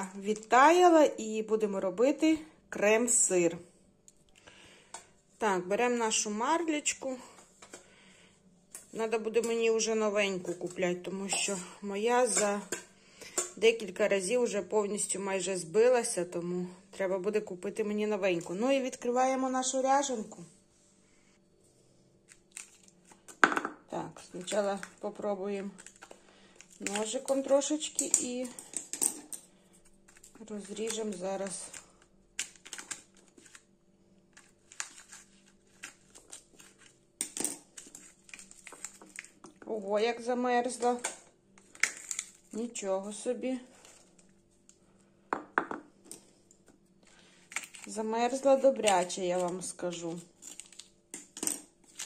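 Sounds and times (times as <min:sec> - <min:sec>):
plastic pouches clicking and crinkling: 0:22.3 - 0:23.4, 0:25.6 - 0:33.7, 0:34.3 - 0:39.6, 0:40.8 - 0:42.6, 0:47.0 - 0:52.0
frozen pouches knocking on countertop: 0:23.3 - 0:23.8, 0:45.3 - 0:45.9.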